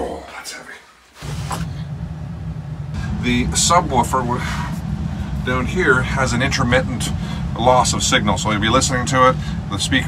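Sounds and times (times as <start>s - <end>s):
low rumble: 1.2s - 10.0s.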